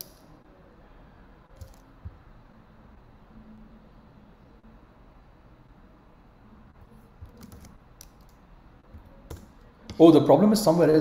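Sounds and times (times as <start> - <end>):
keyboard typing: 7.2 - 9.7.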